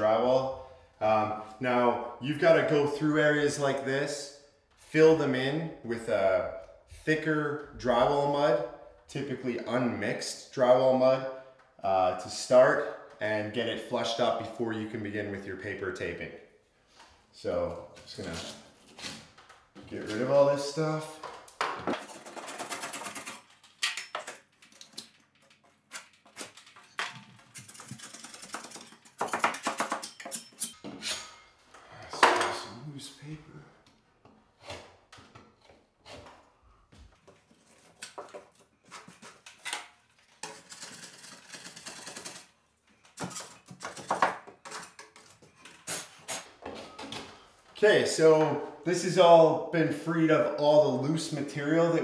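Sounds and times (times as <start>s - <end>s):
knife blades scraping drywall: 44.6s - 46.6s.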